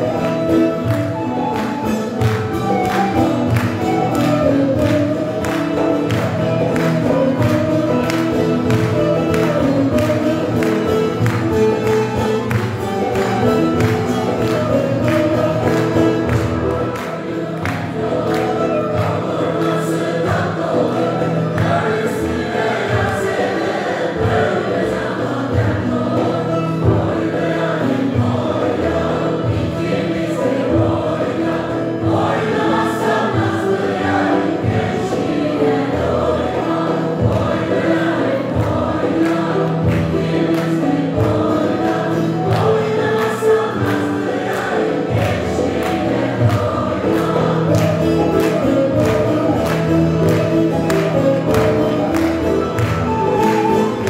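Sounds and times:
frame drum beat: 0:00.0 - 0:54.0
mixed choir singing folk song: 0:00.0 - 0:54.0
plucked lutes: 0:00.0 - 0:54.0.

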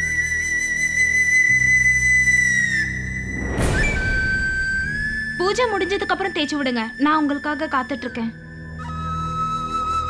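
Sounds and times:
held flute-like note: 0:00.0 - 0:10.0
short whoosh: 0:03.0 - 0:05.4.

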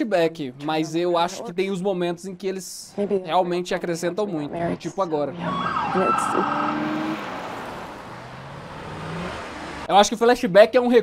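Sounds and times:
car driving by: 0:05.3 - 0:09.9.

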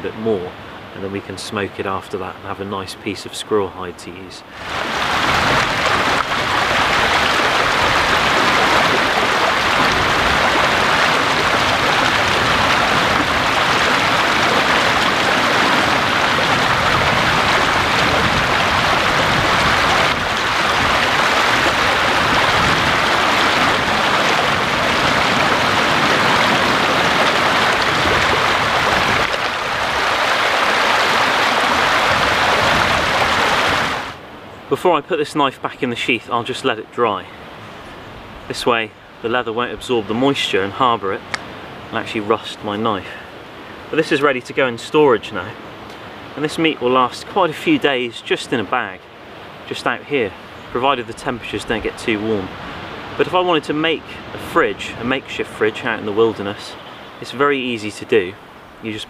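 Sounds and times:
river rushing over stones: 0:00.0 - 0:59.0.

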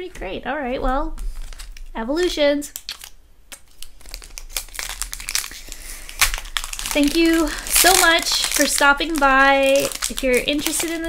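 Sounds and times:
foil wrapper crinkling: 0:01.2 - 0:01.9, 0:02.7 - 0:11.0.

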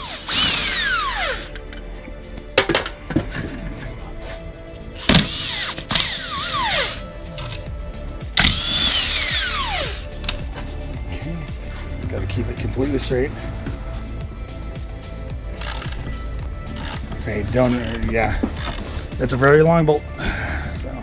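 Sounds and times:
power drill spinning bolts: 0:00.0 - 0:01.9, 0:05.0 - 0:07.6, 0:08.4 - 0:10.4, 0:15.6 - 0:18.9.

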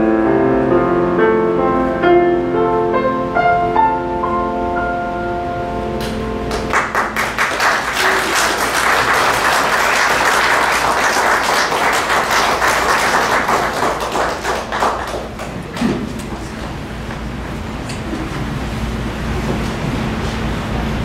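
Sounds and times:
piano chord ringing: 0:00.0 - 0:13.4
audience applauding: 0:06.5 - 0:16.7.

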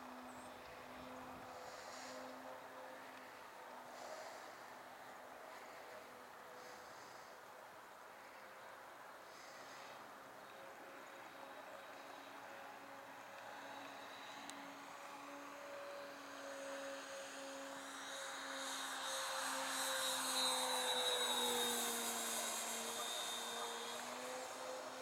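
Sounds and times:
model aircraft propeller hum: 0:00.0 - 0:25.0.

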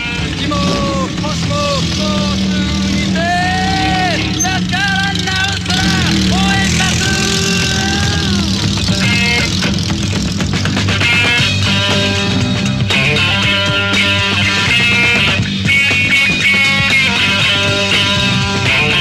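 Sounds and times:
drawn-out sliding calls: 0:00.0 - 0:10.3
motorcycle engine droning: 0:00.0 - 0:19.0.

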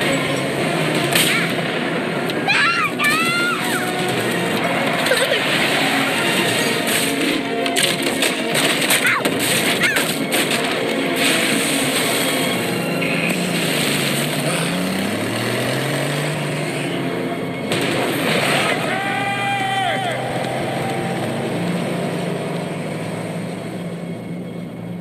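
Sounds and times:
car engine revving: 0:00.0 - 0:25.0.

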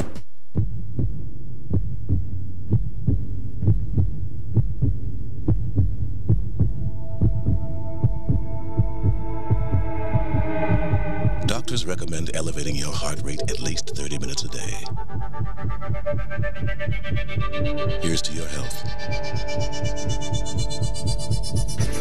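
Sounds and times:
heartbeat thumping: 0:00.0 - 0:22.0
low steady hum: 0:00.4 - 0:21.8
sustained tone with overtones: 0:06.8 - 0:22.0.

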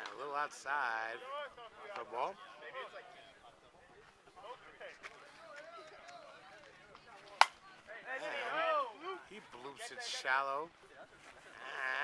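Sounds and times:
faint voices: 0:00.0 - 0:12.0
softball bat hitting ball: 0:07.3 - 0:07.6.

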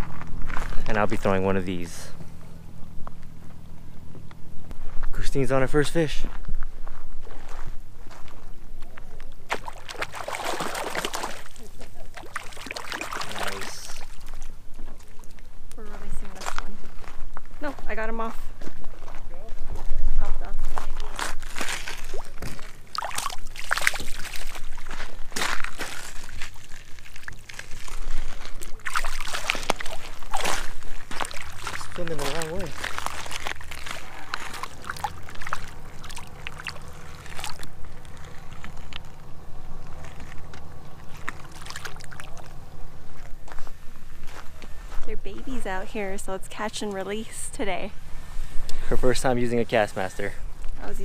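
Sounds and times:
low steady hum: 0:00.0 - 0:51.0
water splashing at shoreline: 0:09.4 - 0:15.3, 0:21.4 - 0:39.2, 0:39.9 - 0:42.8.

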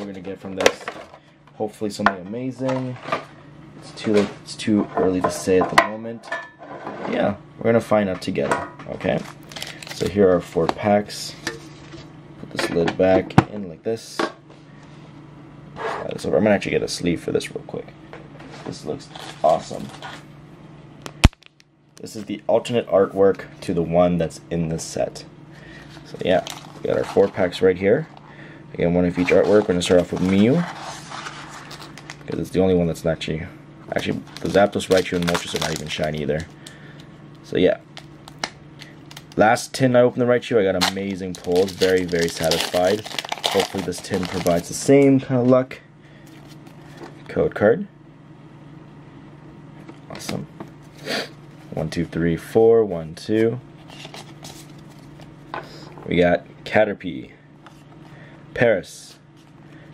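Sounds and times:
low background hum: 0:00.0 - 0:59.9
low room noise: 0:00.0 - 0:59.9.

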